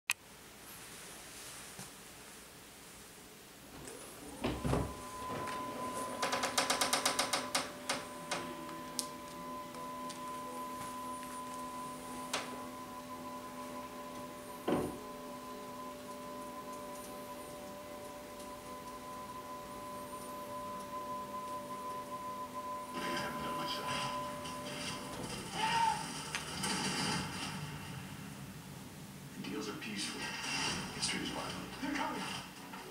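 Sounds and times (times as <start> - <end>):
motor hum: 3.6 - 22.2
burst of noise: 24.7 - 28.6.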